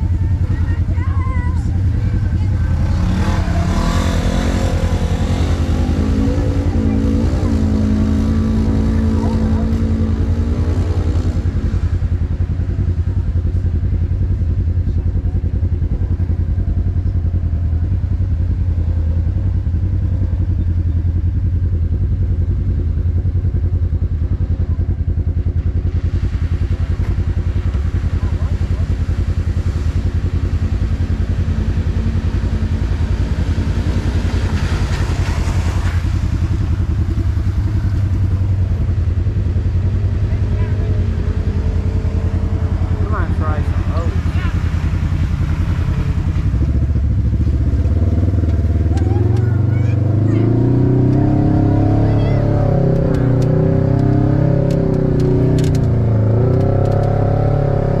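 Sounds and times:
utility vehicle engine idling: 0:00.0 - 0:07.6, 0:11.2 - 0:57.1
engine revving: 0:01.6 - 0:12.4, 0:26.1 - 0:58.0.

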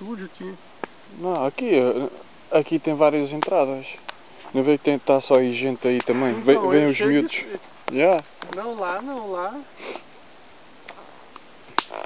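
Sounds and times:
campfire crackling: 0:00.0 - 0:12.0
sharp loud fire pop: 0:06.0 - 0:07.3.

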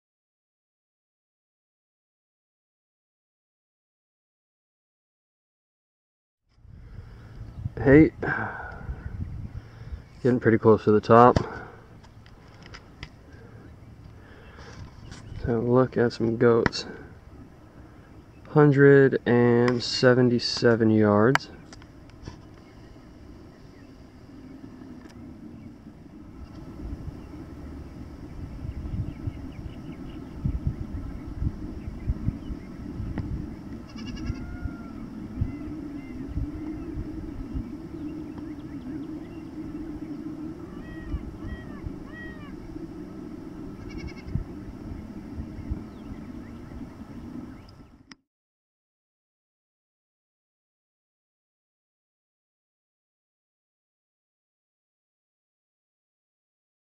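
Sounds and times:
low rumble: 0:19.3 - 0:48.0
distant goats bleating: 0:33.8 - 0:35.1, 0:43.8 - 0:44.4.

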